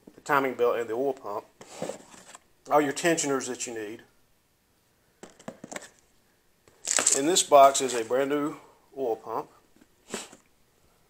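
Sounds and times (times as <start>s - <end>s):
cardboard boxes rustling: 1.6s - 2.5s, 5.2s - 6.0s, 6.8s - 8.5s.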